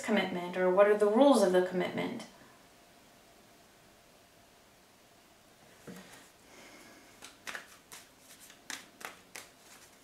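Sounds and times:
cards being shuffled: 0:07.1 - 0:10.0.

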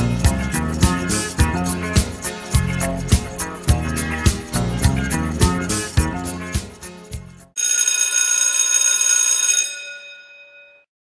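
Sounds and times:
upbeat music with bass and drums: 0:00.0 - 0:07.5
electric bell ringing: 0:07.6 - 0:10.9.

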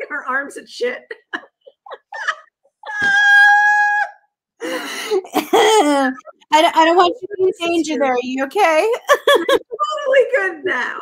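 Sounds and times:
women laughing: 0:01.1 - 0:04.1, 0:05.2 - 0:06.5, 0:08.8 - 0:10.0
high-pitched squeal of laughter: 0:01.9 - 0:04.2.

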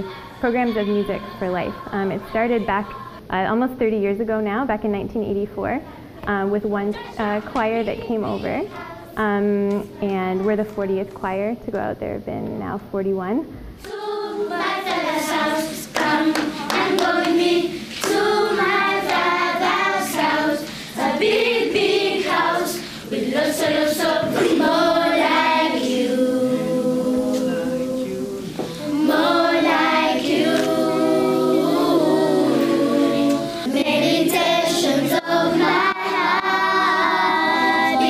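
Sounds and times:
children's choir singing: 0:13.8 - 0:38.0
hand claps: 0:15.9 - 0:18.3.

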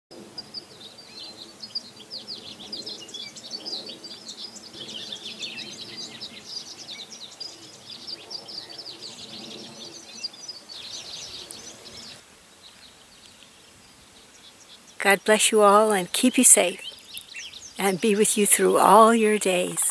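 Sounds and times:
songbirds chirping: 0:00.1 - 0:19.9.

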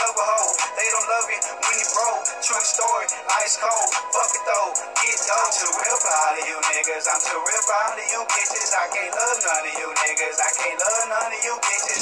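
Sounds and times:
man rapping over a beat: 0:00.0 - 0:12.0.

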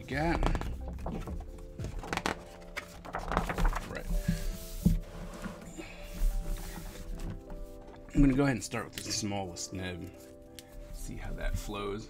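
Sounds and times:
paper pages turning and rustling: 0:00.0 - 0:08.7
background music: 0:00.0 - 0:12.0.

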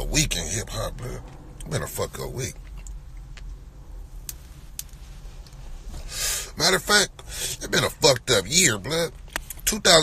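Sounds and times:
low rumble inside a car: 0:00.0 - 0:10.0.

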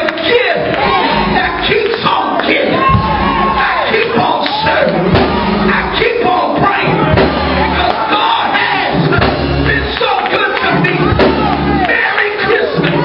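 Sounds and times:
congregation shouting back: 0:00.0 - 0:13.0
preacher shouting into microphone: 0:00.0 - 0:13.0
backing music with low notes: 0:02.8 - 0:13.0.

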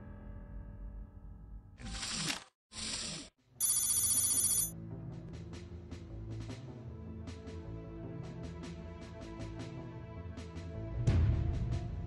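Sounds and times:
high fast-trilling ringing: 0:03.6 - 0:04.7.

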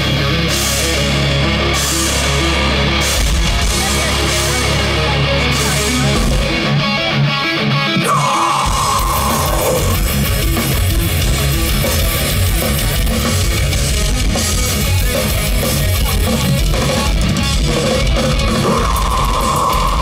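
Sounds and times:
heavy metal band playing: 0:00.0 - 0:20.0.

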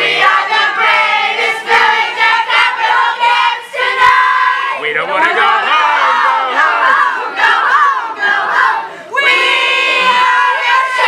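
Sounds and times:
children singing in unison: 0:00.0 - 0:11.0.

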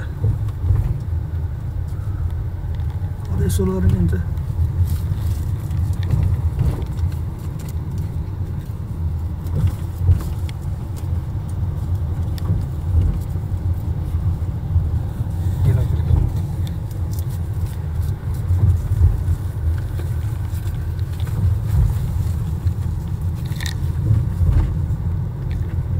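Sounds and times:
tyre and engine rumble inside car: 0:00.0 - 0:25.9.

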